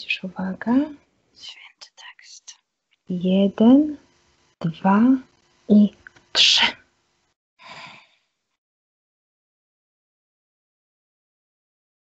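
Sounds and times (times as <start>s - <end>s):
voice: 0.0s - 2.5s, 3.1s - 4.0s, 4.6s - 6.8s.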